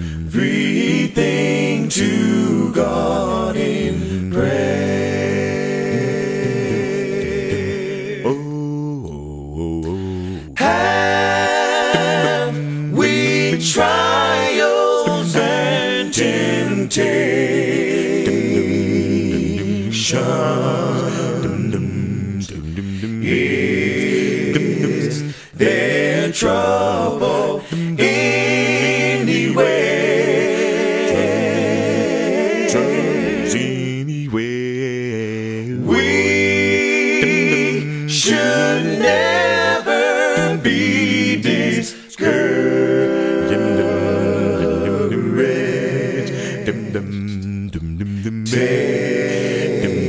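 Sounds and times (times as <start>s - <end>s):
men singing a cappella harmony: 0.0s - 50.0s.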